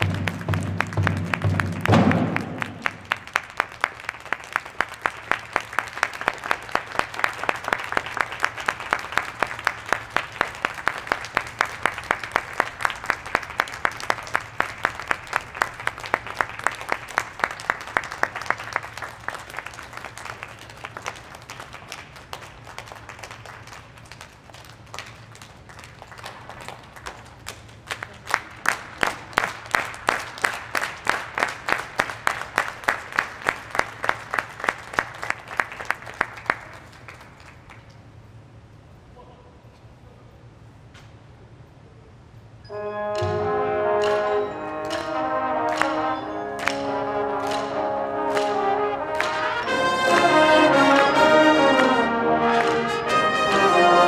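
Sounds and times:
audience clapping in unison: 0.0s - 38.0s, 44.0s - 53.9s.

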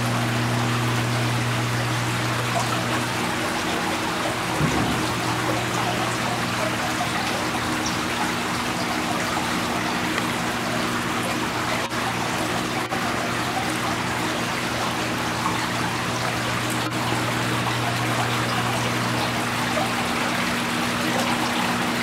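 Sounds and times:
fountain water trickling: 0.0s - 22.0s
steady low hum: 0.0s - 22.0s.

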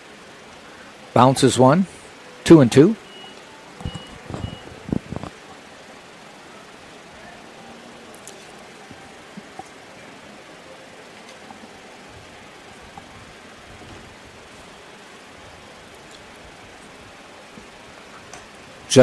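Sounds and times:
faint ballpark ambience: 0.0s - 19.0s.

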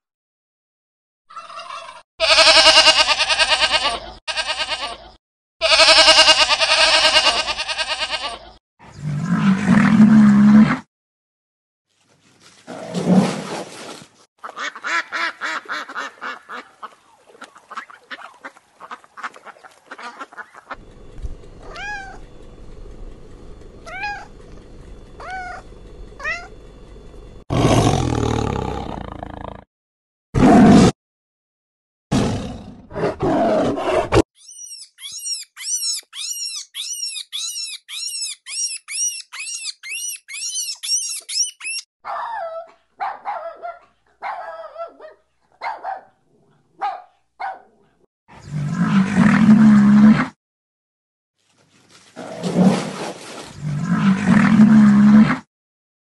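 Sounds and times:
animal cries: 1.3s - 8.6s, 21.6s - 22.3s, 23.8s - 24.3s, 25.2s - 26.5s, 34.4s - 42.7s
rapid high animal calls: 25.2s - 25.6s, 34.4s - 41.9s.

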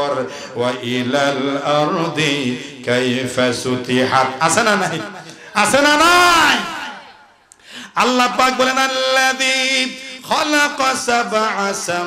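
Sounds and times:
man chanting through a microphone: 0.0s - 7.1s, 7.9s - 12.0s.

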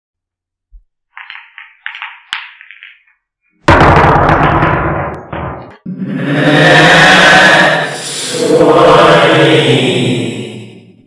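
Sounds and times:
deep ringing hit: 3.7s - 5.8s.

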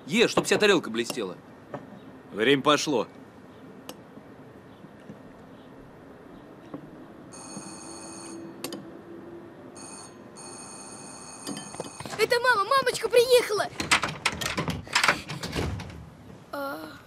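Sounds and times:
intercom handset ringing: 7.3s - 8.5s, 9.8s - 12.2s.

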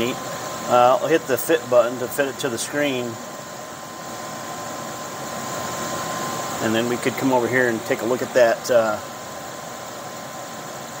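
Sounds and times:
machinery whooshing hum: 0.0s - 9.3s
faint constant tone: 0.0s - 11.0s.

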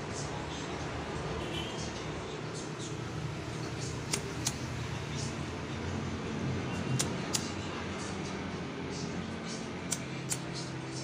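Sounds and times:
lighter clicks: 4.1s - 4.6s, 7.0s - 7.5s, 9.9s - 10.5s.

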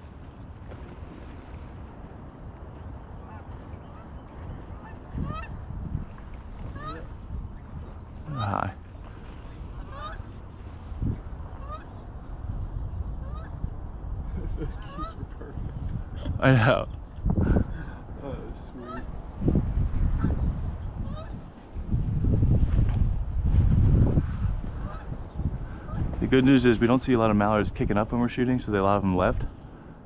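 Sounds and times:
geese honking: 4.8s - 5.6s, 6.7s - 7.1s, 8.2s - 8.8s, 9.8s - 10.3s, 11.6s - 12.0s, 13.2s - 13.6s, 18.8s - 19.1s, 21.0s - 21.4s
person laughing: 14.3s - 17.0s.

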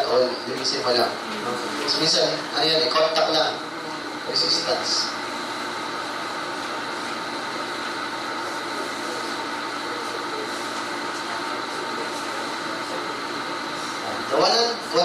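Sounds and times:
room noise hum and hiss: 0.0s - 15.0s.

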